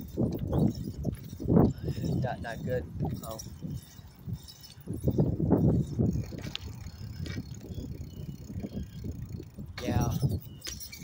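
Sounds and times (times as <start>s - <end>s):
bike clicks: 0.0s - 11.0s
wind and road rumble: 0.0s - 11.0s.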